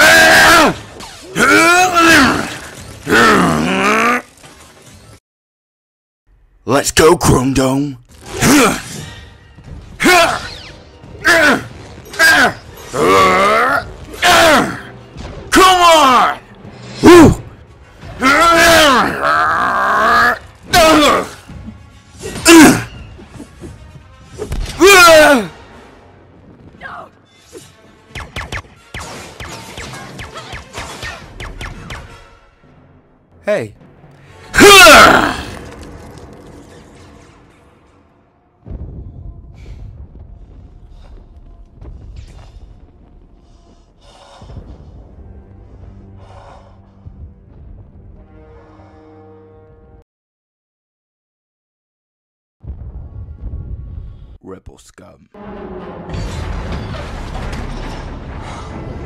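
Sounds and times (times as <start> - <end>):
film music: 6.3 - 50.0, 52.7 - 59.0
person groaning with effort: 34.6 - 35.6.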